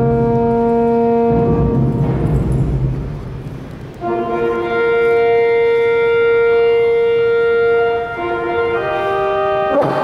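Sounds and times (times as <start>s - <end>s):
pipe organ chord: 0.0s - 10.0s.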